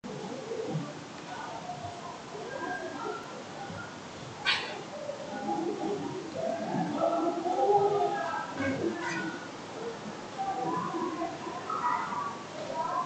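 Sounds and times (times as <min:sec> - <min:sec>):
faint indistinct voices: 0:00.0 - 0:13.0.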